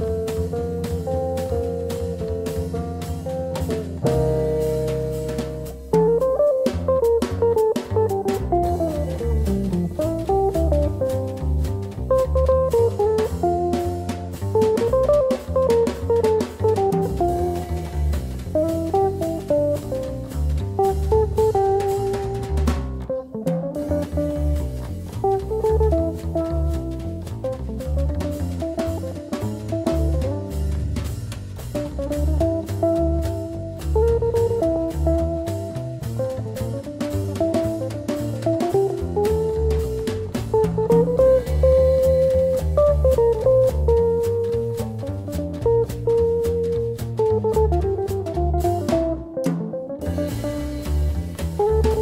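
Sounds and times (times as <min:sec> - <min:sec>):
swing band playing: 0:00.0 - 0:52.0.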